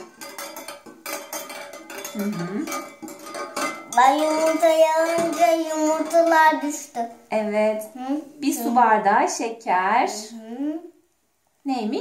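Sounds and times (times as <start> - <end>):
whisk clinking against glass bowl: 0.0 - 6.7.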